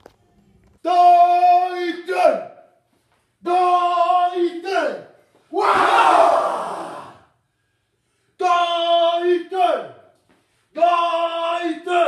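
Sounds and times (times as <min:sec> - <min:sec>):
group of men shouting together: 0:04.7 - 0:07.3.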